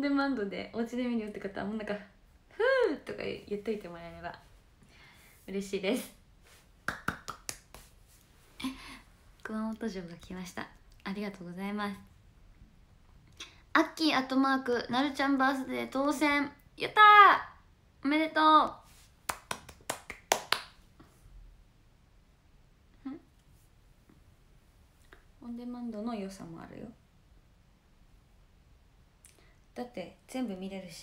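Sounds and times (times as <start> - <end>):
person clapping: 6.9 - 8.0, 19.3 - 20.8.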